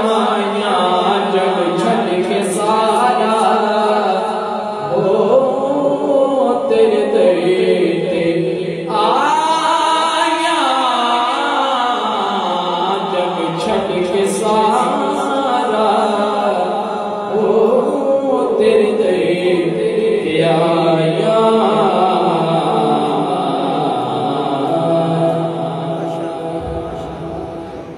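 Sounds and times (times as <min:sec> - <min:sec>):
young man reciting unaccompanied: 0:00.0 - 0:27.9.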